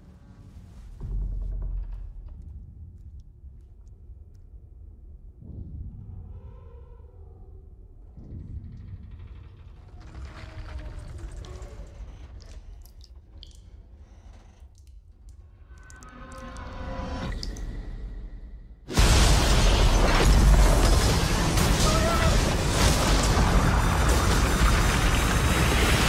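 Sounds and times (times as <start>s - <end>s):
low rumble: 0.0s - 26.0s
loud crash of shattering: 18.9s - 26.0s.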